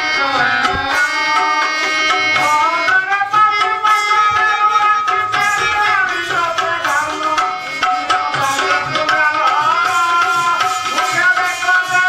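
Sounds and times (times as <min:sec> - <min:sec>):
melodic instrument long notes: 0:00.0 - 0:10.3.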